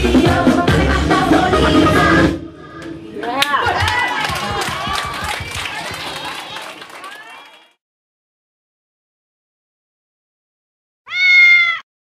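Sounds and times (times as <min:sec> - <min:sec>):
cat meow: 0:11.1 - 0:11.9.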